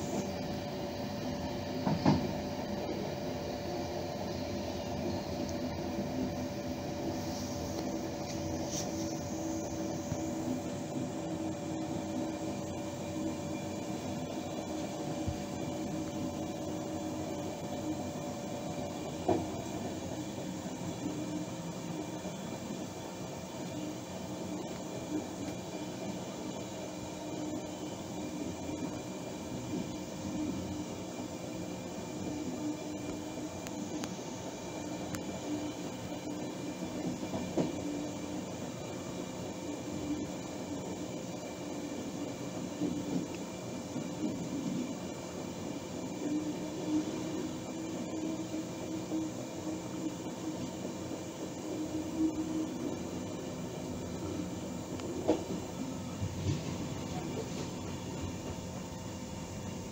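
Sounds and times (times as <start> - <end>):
train running noise: 0.0 - 5.3, 5.9 - 24.0, 24.9 - 39.3, 41.9 - 59.9.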